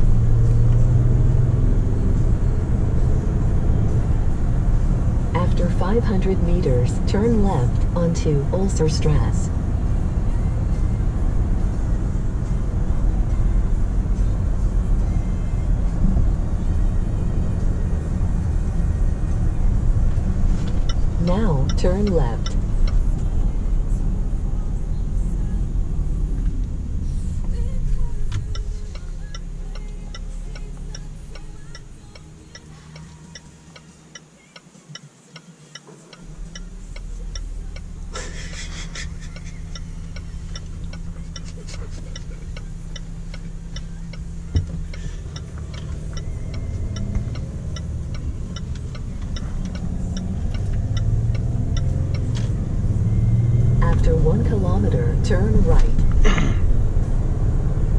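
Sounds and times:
diesel engine in car cabin: 0.0s - 57.9s
turn indicator ticking: 0.0s - 57.9s
tyre road noise: 0.0s - 57.9s.

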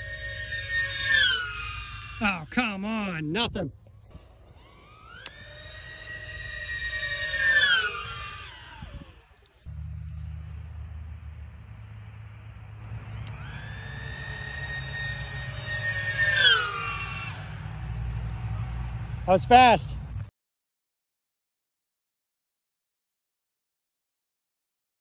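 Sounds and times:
drone motors whining past: 0.0s - 20.3s.

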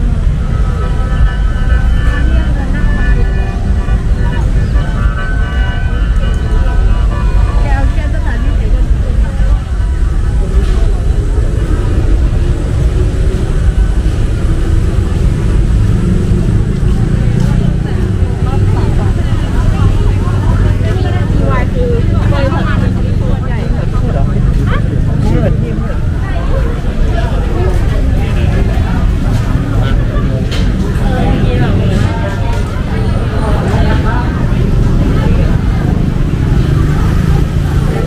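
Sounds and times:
people chattering: 0.0s - 38.0s
steady low rumble: 0.0s - 38.0s.

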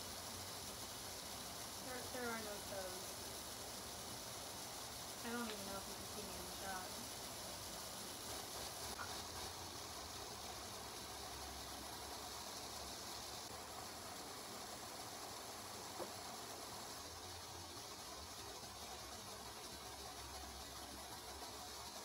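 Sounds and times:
faint room tone hiss: 0.0s - 22.0s.

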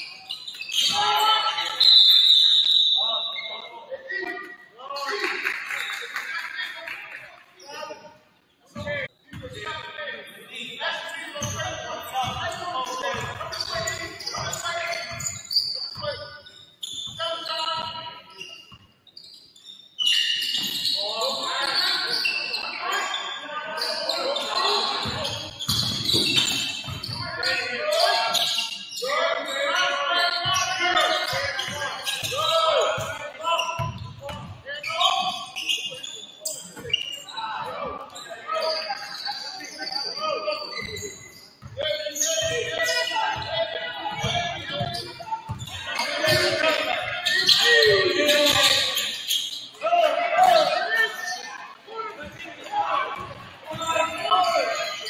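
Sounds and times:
people calling out: 41.8s - 49.2s
basketball bouncing on hardwood floor: 44.1s - 45.6s.

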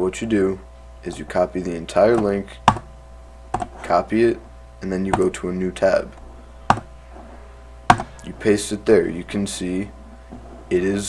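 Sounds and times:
faint low hum: 0.0s - 11.0s
keyboard and mouse clicks: 2.2s - 2.9s, 3.5s - 3.7s.

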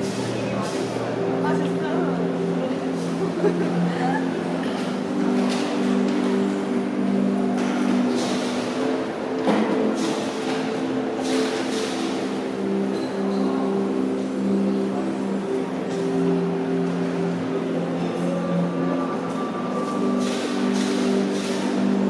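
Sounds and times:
slow ambient drone music: 0.0s - 22.0s.

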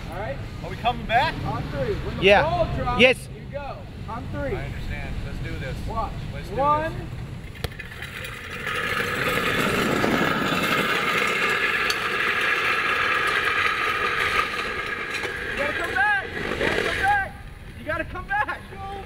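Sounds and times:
wheels rolling on asphalt: 6.4s - 19.0s.

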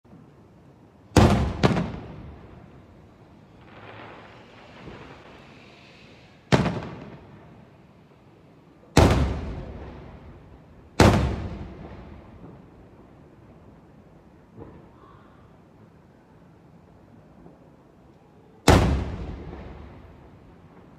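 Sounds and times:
firework bangs with echo: 1.1s - 2.7s, 6.5s - 7.3s, 9.0s - 10.4s, 11.0s - 12.7s, 18.7s - 20.9s
firework hiss: 3.2s - 7.3s.

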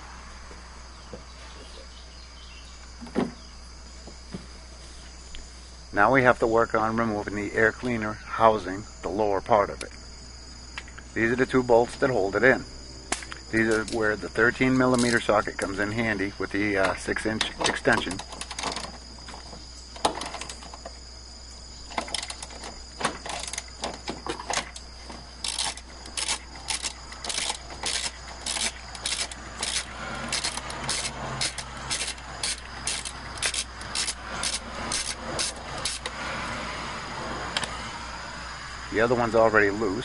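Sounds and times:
crickets chirping: 0.0s - 40.0s
socket ratchet clicking: 23.2s - 36.2s.

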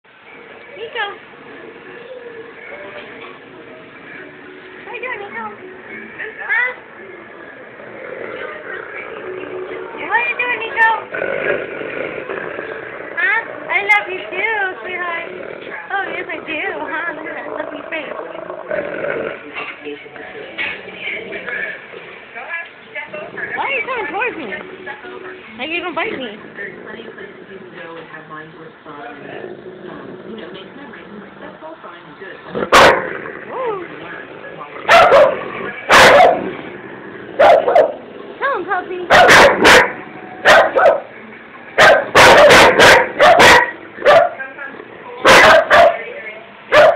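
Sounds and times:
dog growling: 0.4s - 41.1s.

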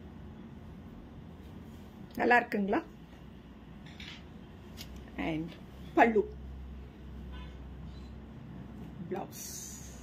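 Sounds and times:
low steady background hum: 0.0s - 10.0s.

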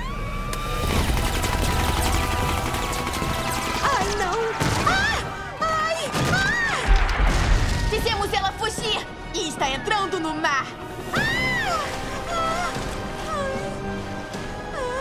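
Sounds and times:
dramatic music: 0.0s - 15.0s
booming impacts: 6.2s - 8.4s.

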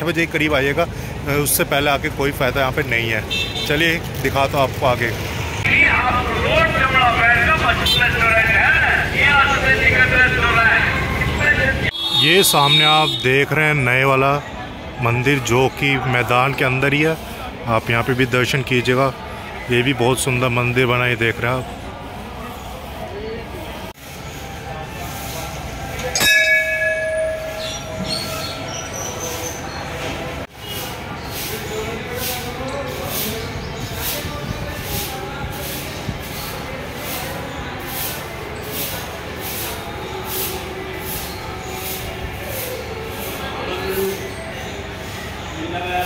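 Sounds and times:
people talking: 0.0s - 46.0s
temple bell ringing: 26.0s - 29.3s.

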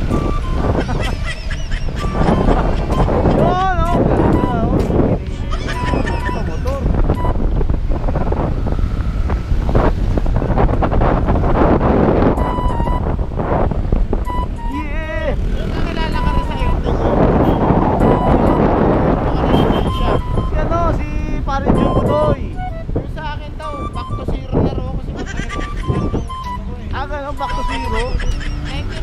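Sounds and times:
wind buffeting microphone: 0.0s - 29.0s
muffled voice or music: 19.3s - 29.0s
short steady beeps: 19.6s - 20.6s.

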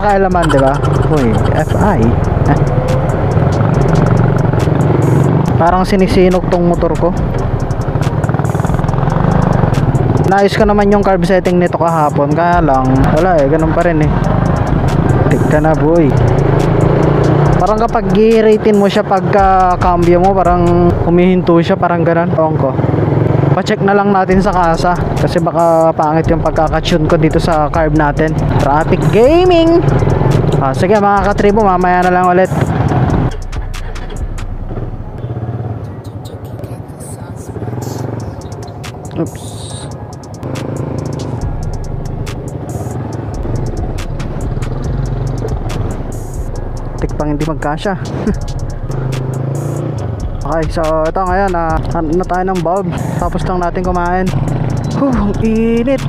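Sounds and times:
motorcycle engine running unevenly: 0.0s - 18.5s, 40.4s - 56.0s.

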